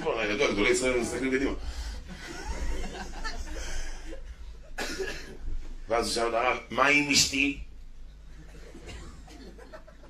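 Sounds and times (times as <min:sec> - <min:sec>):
man coughing: 0:04.7 - 0:05.4, 0:08.8 - 0:09.6.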